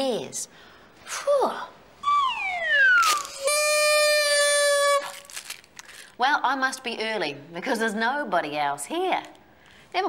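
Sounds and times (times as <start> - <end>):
falling whistle glide: 2.0 - 5.0.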